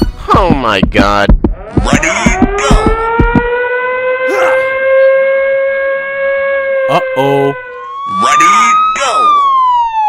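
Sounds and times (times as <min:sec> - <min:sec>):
siren wail rising: 0:01.5 - 0:10.0.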